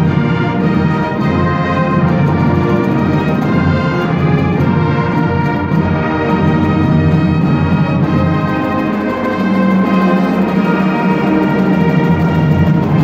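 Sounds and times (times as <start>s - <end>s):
brass sustained chords: 0.0s - 13.0s
steady drum beat: 0.0s - 13.0s.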